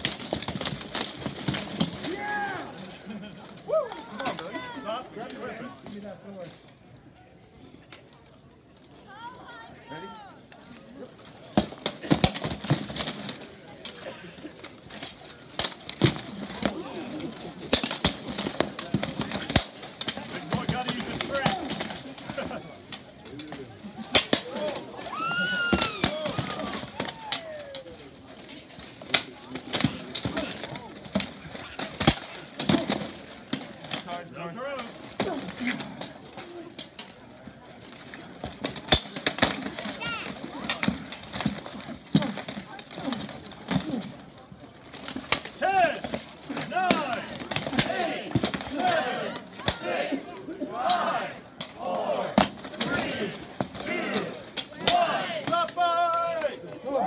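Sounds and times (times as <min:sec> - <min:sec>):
spectators shouting: 0:02.0 - 0:03.0, 0:24.4 - 0:28.0, 0:46.7 - 0:57.0.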